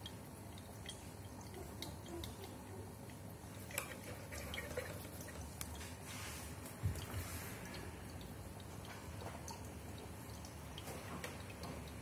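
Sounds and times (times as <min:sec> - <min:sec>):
bubbles clicking at water surface: 0:00.0 - 0:05.9
low steady hum: 0:00.0 - 0:12.0.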